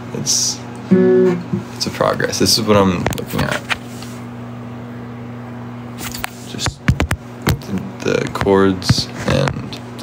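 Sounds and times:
low steady hum: 0.0s - 10.0s
phone handling knocks and rubs: 6.6s - 7.6s.

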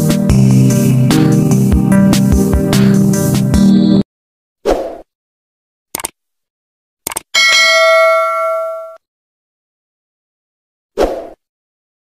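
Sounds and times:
mouse clicks: 6.0s - 6.2s, 7.1s - 7.3s
notification bell ding: 7.4s - 9.0s.

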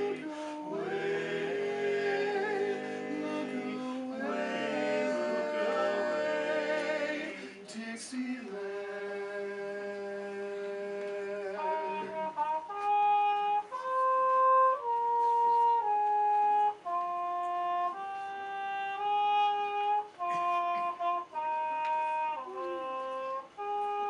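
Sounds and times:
muted trumpet playing jazz: 0.0s - 7.2s, 11.4s - 24.0s
men singing a cappella chord: 0.0s - 12.3s.

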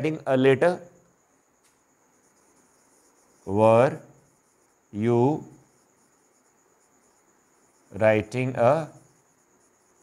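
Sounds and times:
marker writing on whiteboard: 2.2s - 10.0s.

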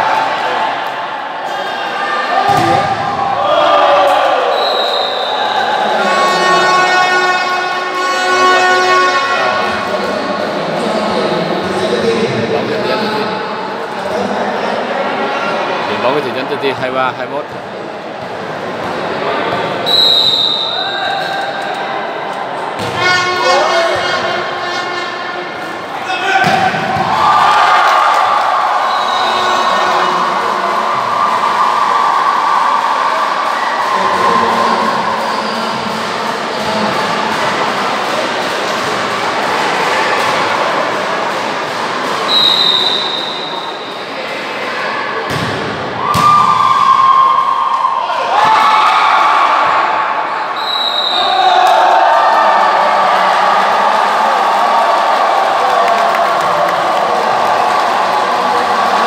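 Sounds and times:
hall crowd noise: 0.0s - 59.0s
short high whistle-like tones: 4.5s - 5.6s, 19.8s - 21.0s, 42.3s - 43.8s, 50.5s - 51.4s.

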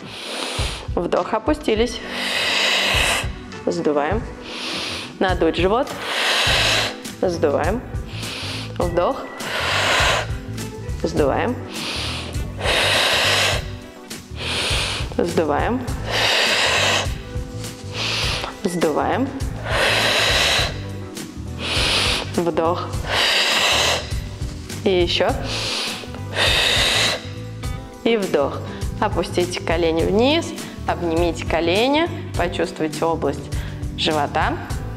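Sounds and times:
forceful breath through mouth: 0.0s - 1.0s, 2.0s - 3.5s, 4.4s - 5.2s, 5.9s - 7.2s, 8.0s - 10.9s, 11.6s - 15.2s, 15.9s - 18.7s, 19.3s - 27.9s
music with steady low beat: 0.0s - 34.9s.

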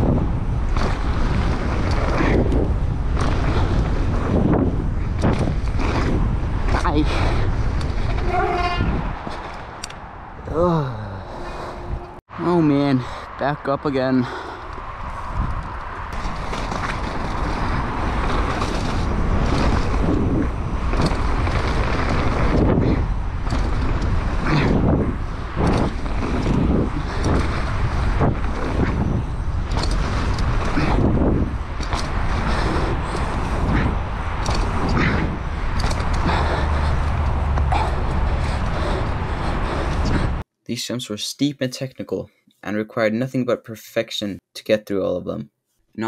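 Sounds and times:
tyres rumbling on loose dirt: 0.0s - 9.9s, 14.9s - 40.4s
bike knocking and rattling: 0.0s - 10.0s, 15.0s - 40.4s
wind buffeting microphone: 0.0s - 40.4s.

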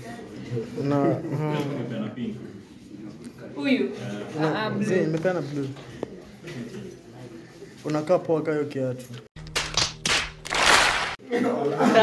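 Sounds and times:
large audience applauding: 9.6s - 11.2s.

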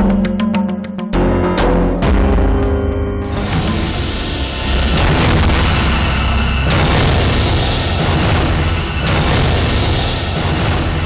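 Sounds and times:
deep booming hits: 1.2s - 11.0s
heavy low drone: 2.0s - 11.0s.

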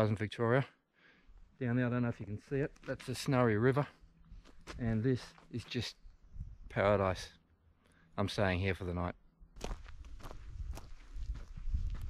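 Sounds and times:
footsteps on dirt and leaves: 9.6s - 12.0s.

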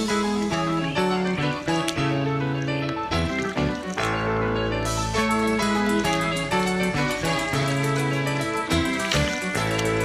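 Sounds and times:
melodic music of held notes: 0.0s - 10.0s.

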